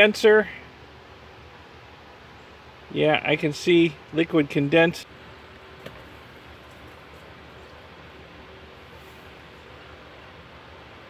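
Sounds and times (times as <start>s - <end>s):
man speaking: 0.0s - 0.7s, 2.9s - 5.1s
faint background noise: 0.0s - 11.0s.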